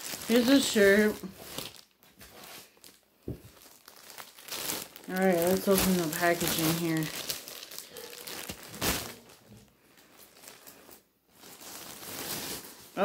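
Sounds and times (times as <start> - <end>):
plastic bag crinkling: 0.0 - 13.0.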